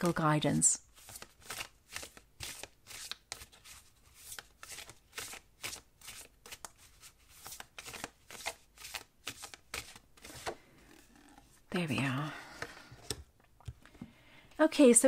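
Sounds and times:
cards being shuffled: 0.9s - 14.1s.

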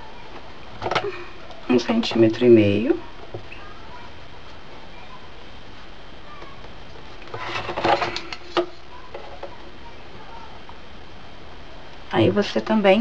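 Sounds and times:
steady low hiss: 0.0s - 13.0s
clicks and rustles of handling: 5.7s - 9.7s.

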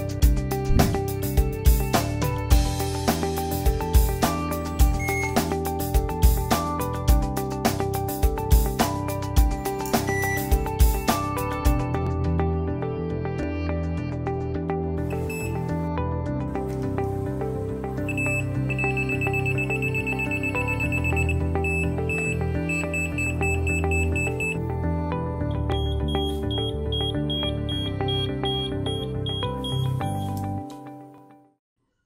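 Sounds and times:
background music: 0.0s - 31.6s
voltage tester beeping: 4.9s - 5.5s, 10.0s - 10.5s, 15.2s - 15.7s, 18.0s - 24.6s, 25.7s - 30.4s.

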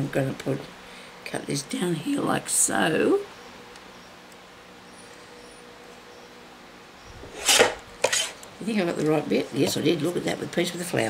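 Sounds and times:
paper trimmer blade swish: 7.2s - 8.4s.

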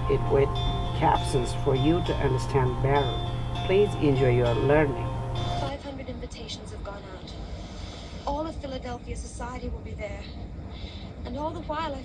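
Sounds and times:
background music: 0.0s - 5.8s
steady low rumble: 0.0s - 6.2s, 6.8s - 12.0s.

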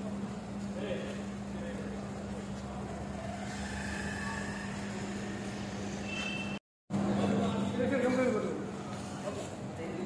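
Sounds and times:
outdoor noise: 0.0s - 10.0s
steady low hum: 0.0s - 10.0s.

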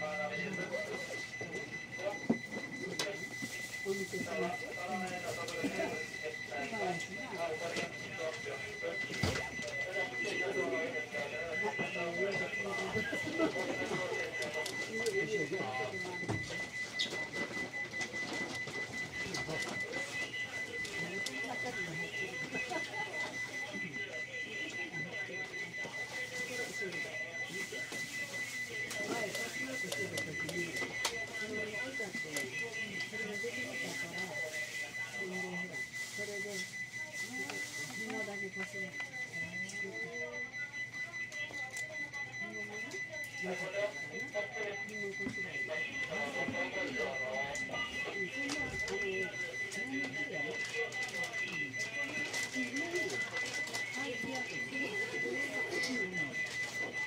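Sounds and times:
murmur of passengers' voices: 0.0s - 57.0s.

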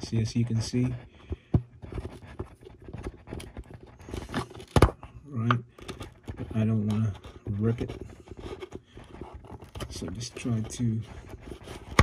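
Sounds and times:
crinkly scraping of dust cap: 5.7s - 12.0s.

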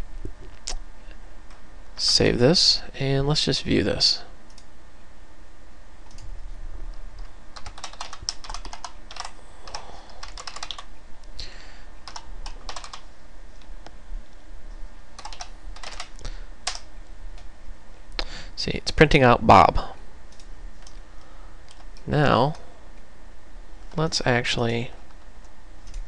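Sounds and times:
steady low hum: 0.0s - 26.0s
computer keyboard typing: 7.2s - 10.9s, 12.0s - 13.1s, 15.2s - 16.9s.

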